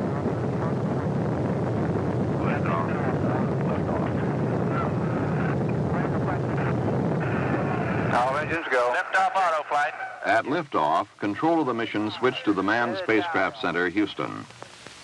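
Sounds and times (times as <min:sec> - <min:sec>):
rocket engines deep rumble: 0:00.0 - 0:15.0
faint radio voice callouts: 0:02.4 - 0:10.5, 0:11.2 - 0:14.5.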